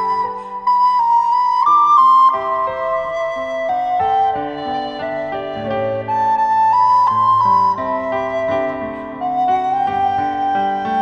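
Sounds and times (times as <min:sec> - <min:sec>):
piano accompaniment: 0:00.0 - 0:11.0
recorder melody: 0:00.0 - 0:11.0.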